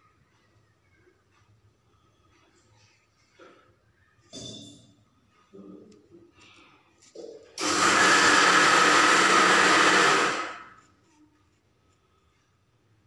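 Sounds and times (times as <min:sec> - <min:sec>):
faint handling sounds: 0:05.0 - 0:07.6, 0:10.8 - 0:13.0
appliance rushing noise: 0:07.6 - 0:10.8.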